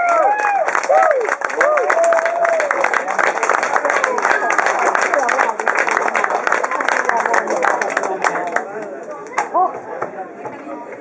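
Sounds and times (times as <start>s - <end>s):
applause: 0.0s - 9.5s.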